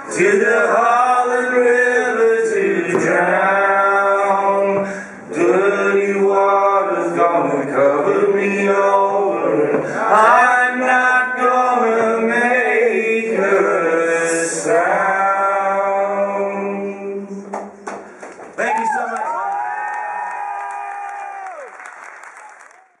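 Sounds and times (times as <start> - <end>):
man singing: 0.0 - 17.5
audience clapping: 17.5 - 23.0
cheering whoop: 18.6 - 23.0.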